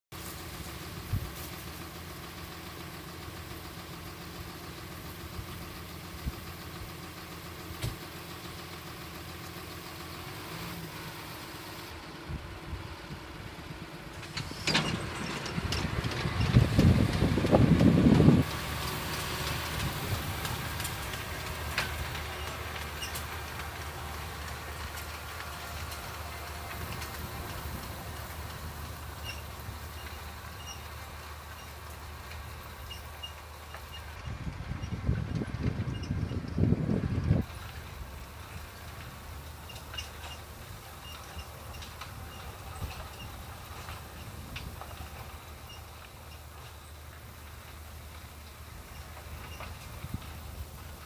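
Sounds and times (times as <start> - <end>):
loud rough rumble: 0.0 - 51.0
tractor diesel engine running: 0.1 - 51.0.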